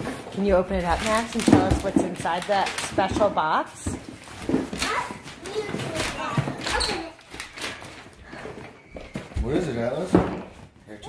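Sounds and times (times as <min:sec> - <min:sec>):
cardboard and paper rustling: 0:00.0 - 0:10.8.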